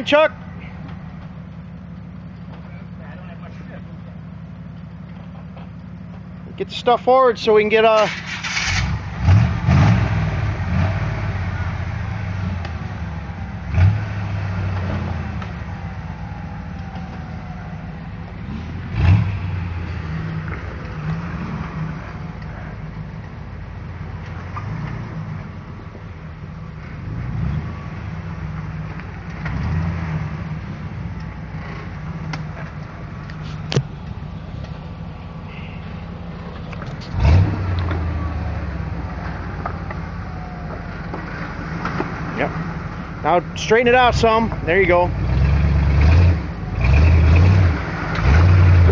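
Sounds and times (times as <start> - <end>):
off-road vehicle engine revving: 0.0 - 48.9.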